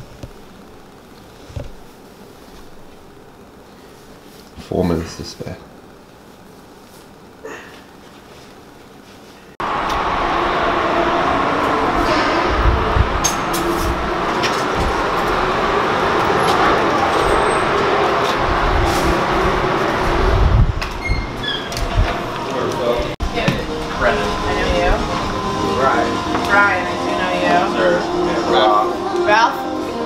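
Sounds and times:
loud steady rumbling: 0:09.6 - 0:30.0.

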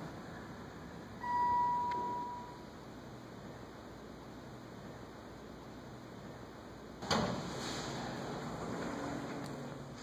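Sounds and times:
elevator arrival chime: 0:01.2 - 0:02.6.

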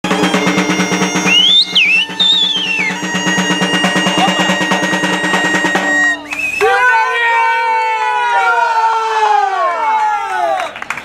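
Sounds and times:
bagpipe drone and melody: 0:00.0 - 0:06.3
side drum roll: 0:00.0 - 0:06.3.

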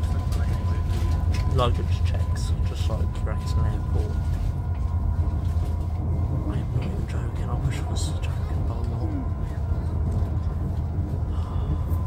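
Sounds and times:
faint steady whine: 0:00.0 - 0:12.0
train rumble inside carriage: 0:00.0 - 0:12.0.

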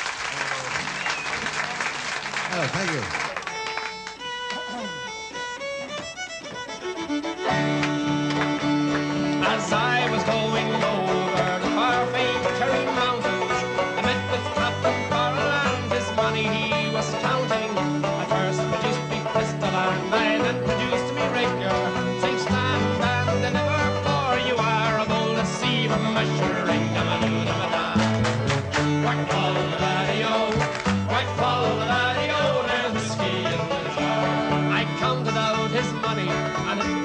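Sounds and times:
folk band playing: 0:00.0 - 0:37.0
man singing: 0:09.4 - 0:28.3, 0:28.9 - 0:37.0.

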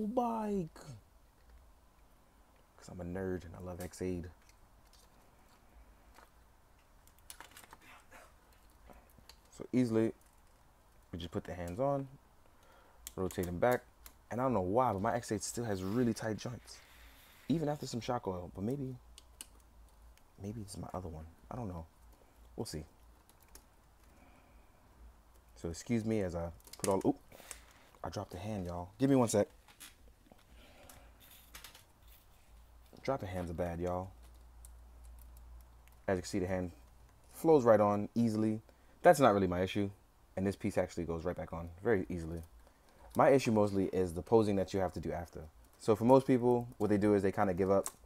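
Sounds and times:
faint clicks of plastic parts: 0:01.2 - 0:02.8, 0:03.7 - 0:14.3, 0:18.5 - 0:20.4, 0:21.6 - 0:37.4, 0:41.6 - 0:48.0.

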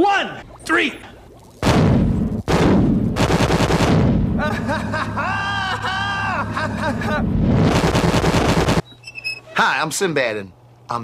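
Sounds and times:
loud explosion blasts: 0:01.6 - 0:04.4.

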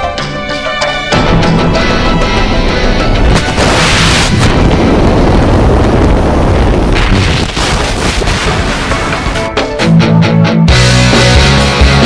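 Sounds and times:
wind rushing over microphone: 0:03.2 - 0:09.5.

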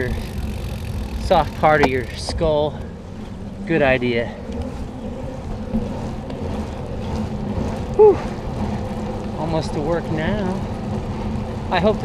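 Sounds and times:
tyres rolling on wet pavement: 0:00.0 - 0:12.0
wind buffeting microphone: 0:00.0 - 0:12.0.

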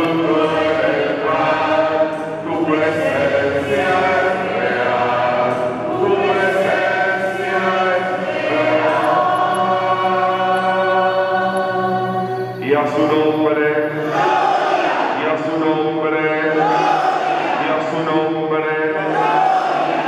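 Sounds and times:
man singing through microphone: 0:00.0 - 0:14.3, 0:15.1 - 0:19.7
congregation singing along: 0:00.0 - 0:20.0.

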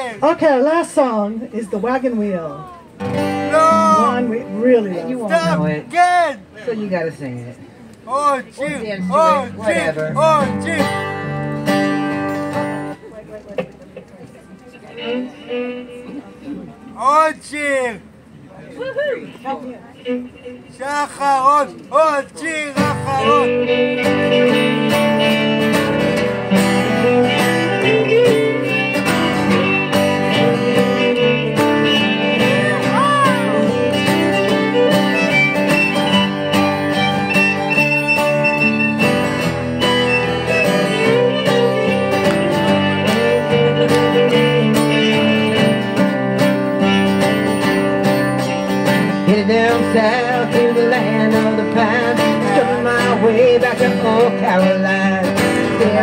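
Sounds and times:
strummed acoustic guitars: 0:00.0 - 0:06.6, 0:08.1 - 0:14.0, 0:19.3 - 0:56.0
fiddle playing lead: 0:03.1 - 0:05.9, 0:09.1 - 0:13.0, 0:14.8 - 0:16.4, 0:19.4 - 0:21.5, 0:22.8 - 0:47.2.

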